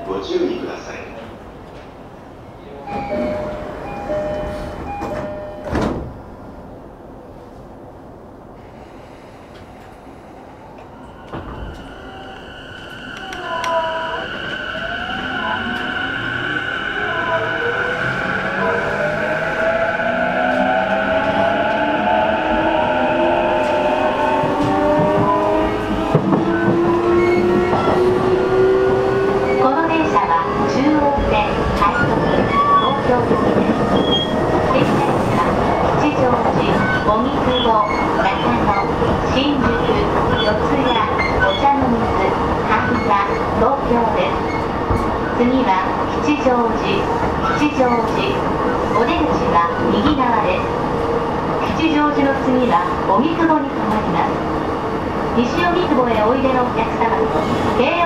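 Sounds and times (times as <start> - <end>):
two-tone door chime: 2.9 - 6.0
train door thump: 5.0 - 6.2.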